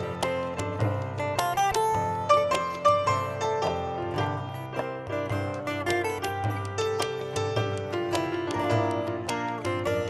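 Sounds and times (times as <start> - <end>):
acoustic guitar: 0.0 - 10.0
grand piano melody: 0.0 - 10.0
tabla: 0.0 - 10.0.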